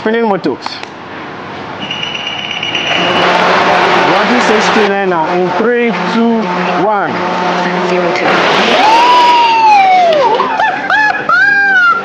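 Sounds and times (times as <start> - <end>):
high motor whine: 1.7 - 10.7
propeller rush: 2.3 - 9.6.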